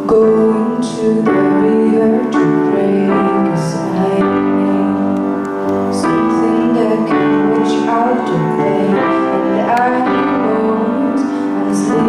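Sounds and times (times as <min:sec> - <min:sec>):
piano chords ringing: 0:00.0 - 0:12.0
woman singing into a microphone: 0:00.0 - 0:12.0.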